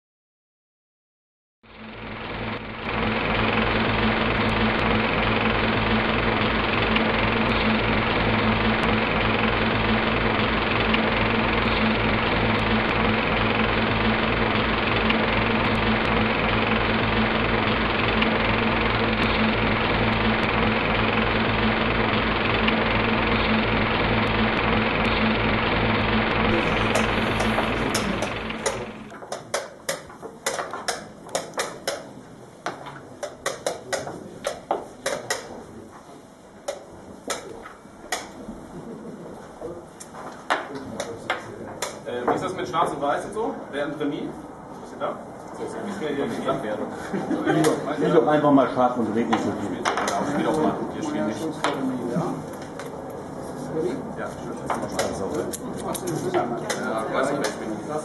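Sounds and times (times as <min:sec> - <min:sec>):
low hum: 0:01.7 - 0:29.1
rapidly pulsing buzz: 0:01.8 - 0:29.1.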